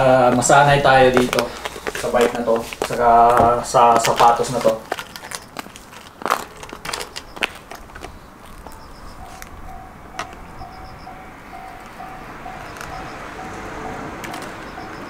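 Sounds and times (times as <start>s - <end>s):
clicks and knocks from bike: 1.1s - 9.5s
level crossing alarm dinging: 6.4s - 15.0s.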